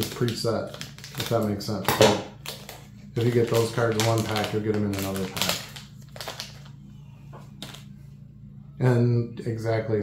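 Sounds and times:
low steady hum: 0.0 - 10.0
trading cards rustling: 2.4 - 6.8.

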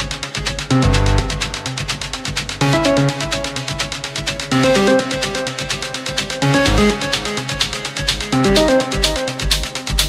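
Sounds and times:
techno music: 0.0 - 10.0.

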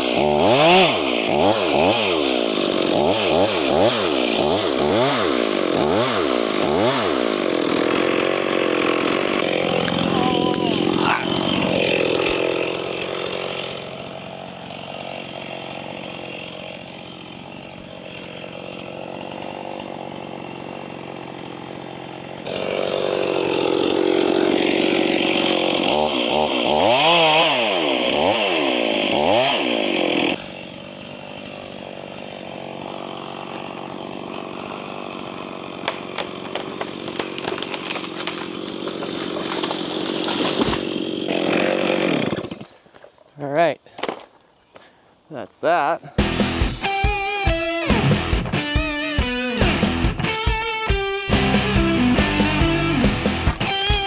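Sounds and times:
chainsaw revving and idling: 0.0 - 42.8, 46.0 - 54.0.

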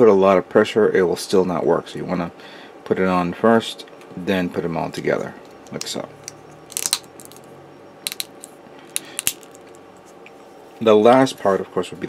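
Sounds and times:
plastic parts clicking: 6.7 - 7.4, 8.1 - 9.7.

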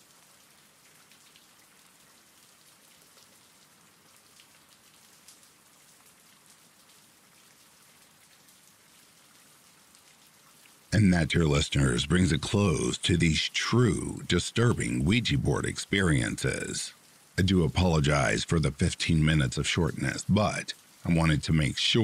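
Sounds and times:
faint steady rain: 0.0 - 22.0.

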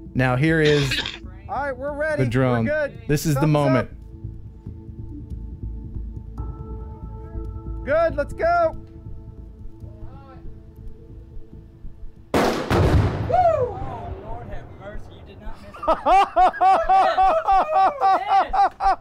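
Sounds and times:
rifle shot and explosion: 12.3 - 13.3
laughter: 15.7 - 19.0.

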